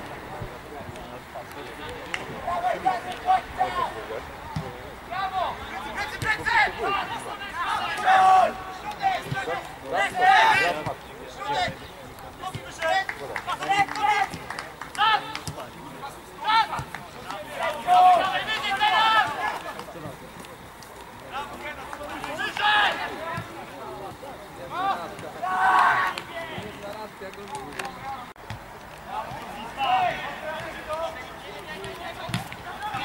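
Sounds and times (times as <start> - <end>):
quieter talk: 0.0 - 33.0
voices shouting calls: 1.6 - 33.0.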